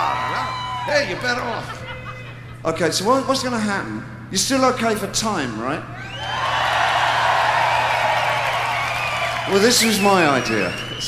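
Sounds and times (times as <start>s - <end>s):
crowd cheering and applauding: 6.1s - 11.0s.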